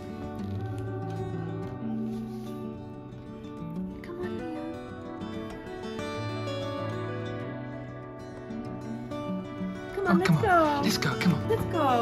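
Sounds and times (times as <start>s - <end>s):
plucked acoustic guitar melody: 0.0s - 12.0s.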